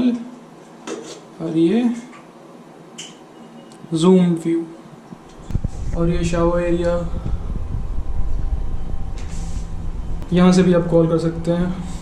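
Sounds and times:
low steady rumble: 5.2s - 12.0s.

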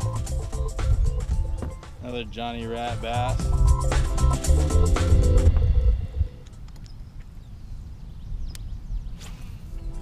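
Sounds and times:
background music: 0.0s - 6.4s, 9.7s - 10.0s
low thump: 1.6s - 1.8s
wind rumbling on microphone: 5.1s - 10.0s
small clicks: 6.4s - 7.0s
short hiss: 9.2s - 9.7s.

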